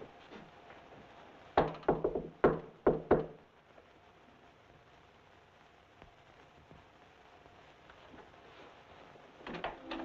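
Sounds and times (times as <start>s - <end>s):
knocking on a door: 1.6s - 3.4s.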